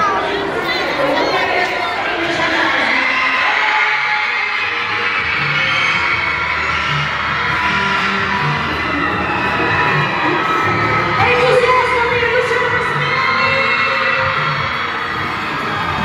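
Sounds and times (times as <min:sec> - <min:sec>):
crowd screaming and cheering: 0:00.0 - 0:16.0.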